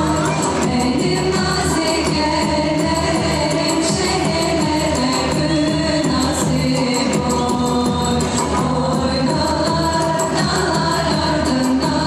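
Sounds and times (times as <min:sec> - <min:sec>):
folk dance music with singing: 0:00.0 - 0:12.0
people singing: 0:00.0 - 0:12.0
steady percussion beat: 0:00.0 - 0:12.0.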